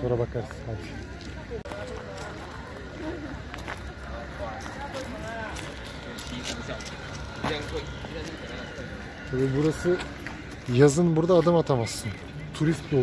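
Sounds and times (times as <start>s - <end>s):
faint voices talking: 0.0s - 13.0s
footsteps on gravel: 0.2s - 13.0s.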